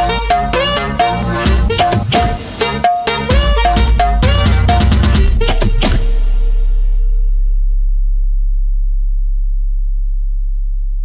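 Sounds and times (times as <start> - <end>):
deep synthesized bass note: 3.4 - 11.0.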